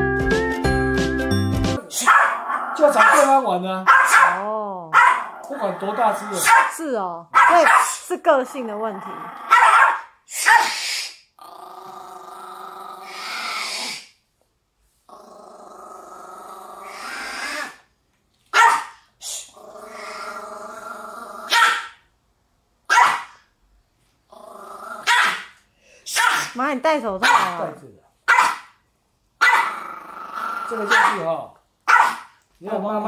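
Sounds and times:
dog growling: 1.8 - 3.4, 4.3 - 6.5, 8.5 - 9.8, 11.4 - 14.1, 15.1 - 17.9, 19.5 - 21.6, 24.3 - 25.2, 29.5 - 31.4
dog barking sharply: 2.0 - 5.3, 6.3 - 8.0, 9.5 - 10.8, 18.5 - 19.1, 21.5 - 22.0, 22.9 - 23.4, 25.0 - 26.6, 27.2 - 27.7, 28.3 - 28.8, 29.4 - 29.7, 30.9 - 32.4.

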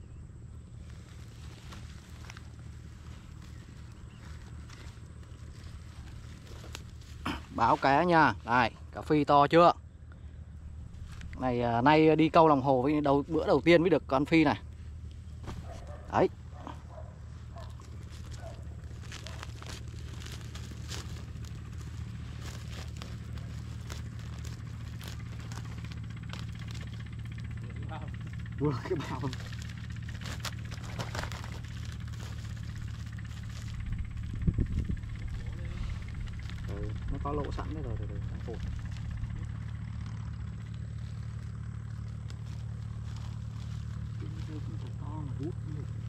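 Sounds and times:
low engine hum: 0.0 - 46.0.

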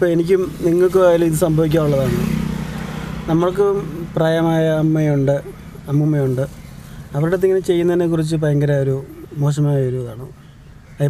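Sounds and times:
man speaking: 0.0 - 2.4, 3.3 - 10.4
passing motor vehicle: 0.0 - 11.0.

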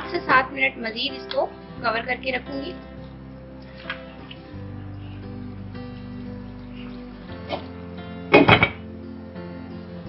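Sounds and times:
background music: 0.0 - 10.0
glass pot lid clinking on metal pot: 8.4 - 8.8.

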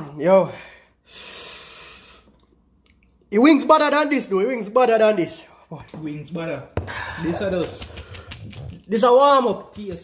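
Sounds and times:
person breathing out hissily: 1.0 - 2.3.

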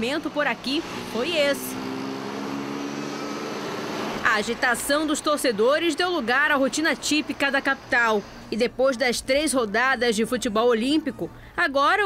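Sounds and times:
motorcycles driving: 0.0 - 8.5
road traffic passing: 0.0 - 11.6.

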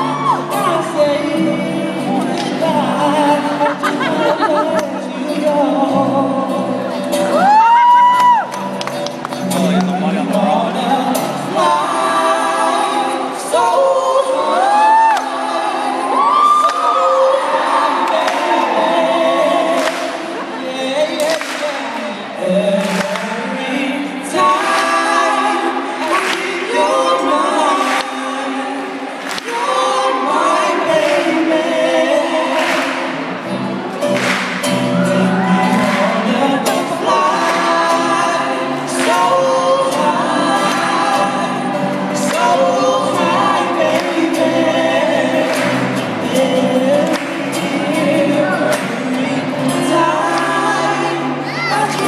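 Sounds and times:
acoustic guitar strumming: 0.0 - 13.6, 21.8 - 52.0
vocal group singing in harmony: 0.0 - 52.0.

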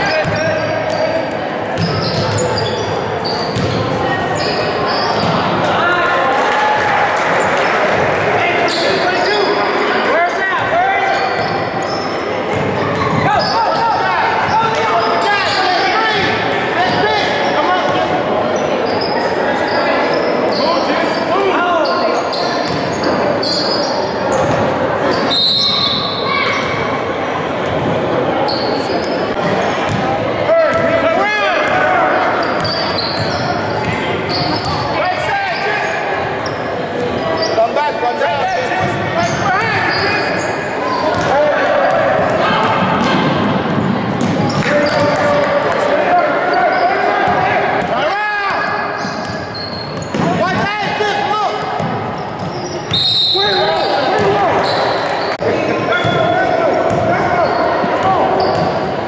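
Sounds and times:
sneaker squeaks: 0.0 - 5.5, 8.6 - 9.9, 11.0 - 27.0, 28.4 - 30.1, 31.7 - 37.9, 38.7 - 41.4, 43.0 - 45.4, 46.4 - 50.7, 51.5 - 59.0
basketball bouncing on court: 0.1 - 1.0, 1.8 - 2.5, 3.4 - 4.0, 29.8 - 30.1, 56.9 - 57.2, 57.9 - 58.8.

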